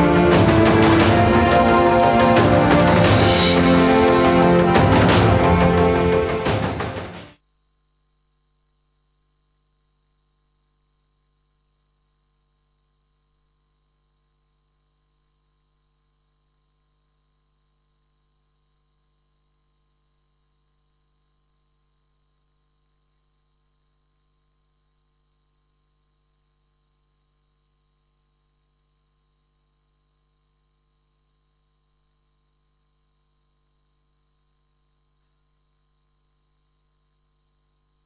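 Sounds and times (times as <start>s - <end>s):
thin high whine: 0.0s - 6.8s
theme music: 0.0s - 7.4s
faint electronic hum: 7.4s - 38.0s.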